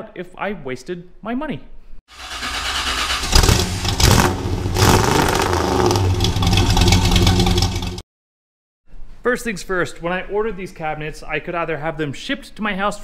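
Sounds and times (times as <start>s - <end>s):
car engine revving: 2.2s - 8.0s.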